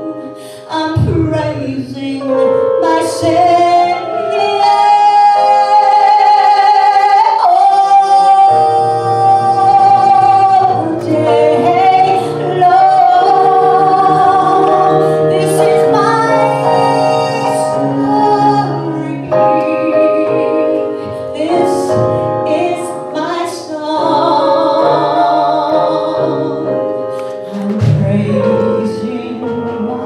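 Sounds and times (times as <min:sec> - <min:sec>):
instrumental accompaniment: 0:00.0 - 0:30.0
woman singing into microphone: 0:00.0 - 0:30.0.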